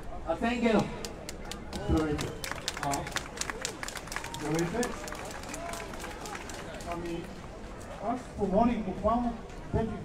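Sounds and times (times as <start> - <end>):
people clapping: 1.0 - 7.4.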